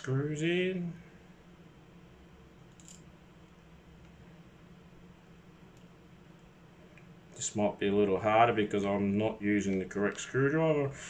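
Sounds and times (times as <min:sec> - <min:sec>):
low steady buzz: 0:00.0 - 0:11.0
handling small screws: 0:02.7 - 0:03.1.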